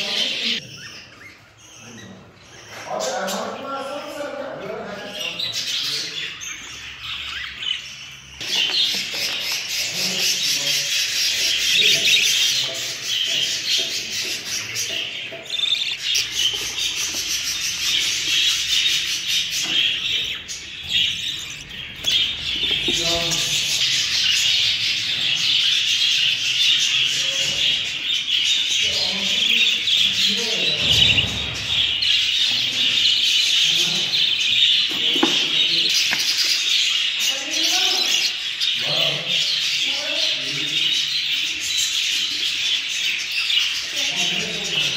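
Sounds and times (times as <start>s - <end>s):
budgerigars chirping: 0.0s - 44.9s.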